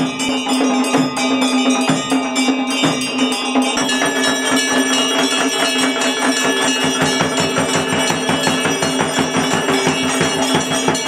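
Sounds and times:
bells and percussion struck rhythmically: 0:00.0 - 0:11.0
steady ringing tone: 0:00.0 - 0:11.0.

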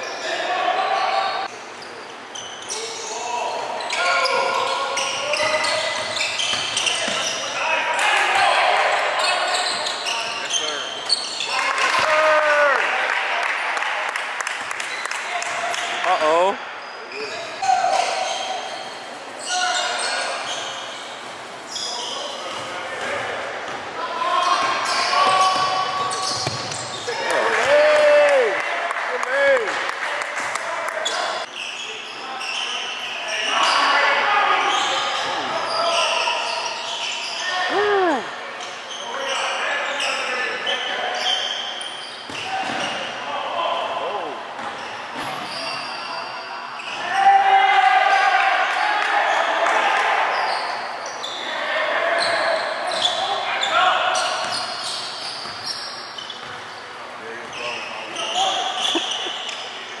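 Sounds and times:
sneakers squeaking: 0:00.0 - 0:12.1, 0:16.8 - 0:27.4, 0:31.0 - 0:43.2, 0:44.4 - 0:47.2, 0:50.3 - 1:00.0
basketball bouncing: 0:26.4 - 0:26.8.

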